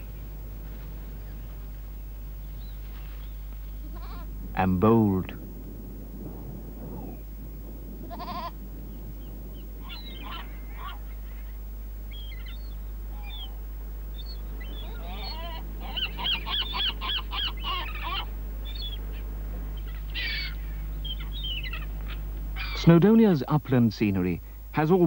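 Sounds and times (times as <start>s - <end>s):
birds calling: 0.0s - 25.0s
goat bleating: 3.8s - 4.3s, 8.1s - 8.5s.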